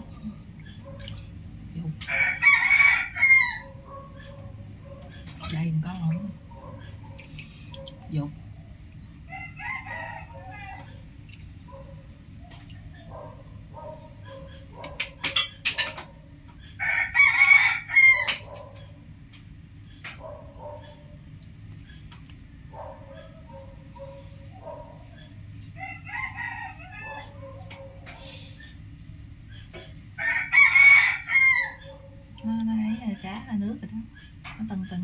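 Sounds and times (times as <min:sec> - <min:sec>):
quieter rooster calls: 0:02.0 - 0:04.3, 0:09.2 - 0:11.2, 0:16.7 - 0:19.0, 0:23.3 - 0:28.8, 0:30.1 - 0:32.1
rooster crowing: 0:02.0 - 0:04.3, 0:09.2 - 0:11.1, 0:16.7 - 0:19.0, 0:22.8 - 0:28.3, 0:30.1 - 0:32.2.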